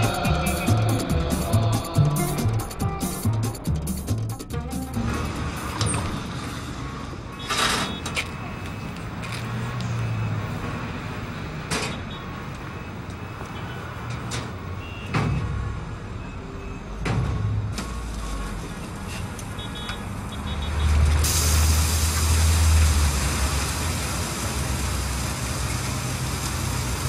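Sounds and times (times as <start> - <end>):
background music with steady beat: 0.0 - 5.8
city street traffic: 0.0 - 27.0.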